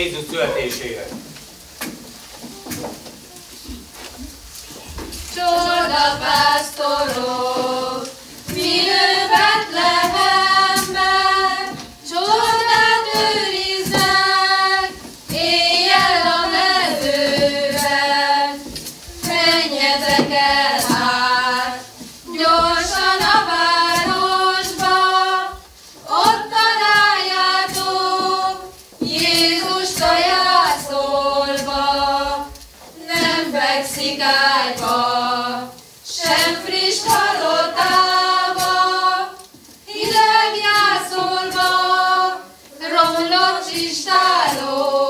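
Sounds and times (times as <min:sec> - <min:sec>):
women and girls singing: 0:01.8 - 0:45.0.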